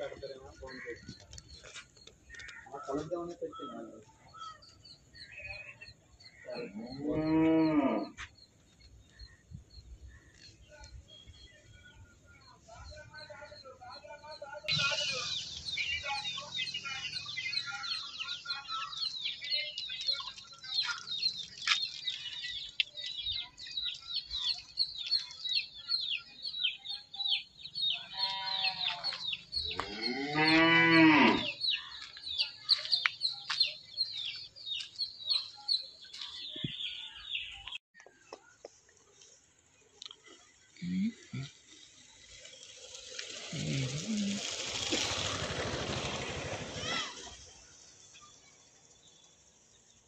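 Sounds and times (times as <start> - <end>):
cow mooing: 6.7 - 8.2, 29.8 - 31.6.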